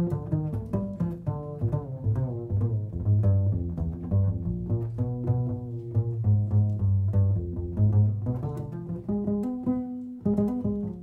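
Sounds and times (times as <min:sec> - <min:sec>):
plucked double bass: 0:00.0 - 0:11.0.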